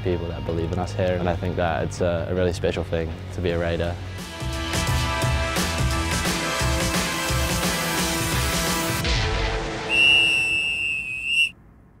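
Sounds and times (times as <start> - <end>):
background music: 0.0 - 10.4
long whistle blast: 9.9 - 11.5.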